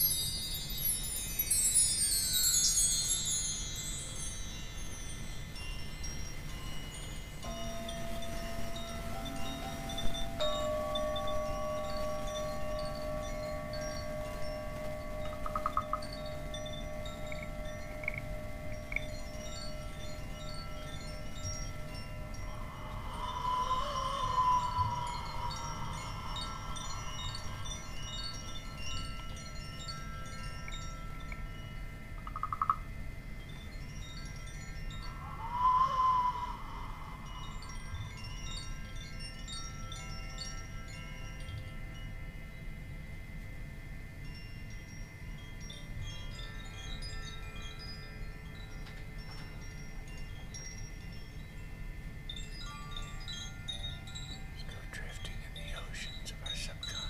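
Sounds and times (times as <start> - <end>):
bar chimes tinkling: 0.0 - 57.0
wooden whistle gliding calls: 22.4 - 27.5, 35.0 - 37.7.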